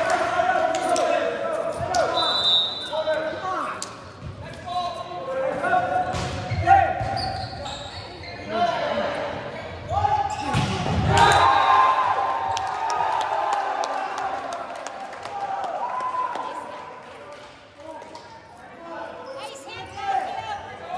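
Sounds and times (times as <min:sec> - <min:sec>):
sneakers squeaking on wooden floor: 0:06.4 - 0:08.5.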